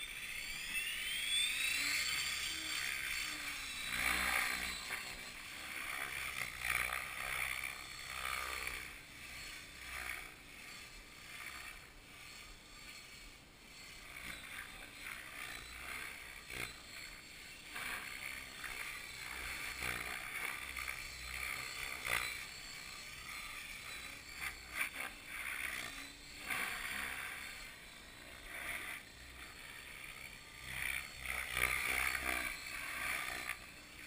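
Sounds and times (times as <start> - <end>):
model helicopter motor and rotor: 0.0 - 34.0.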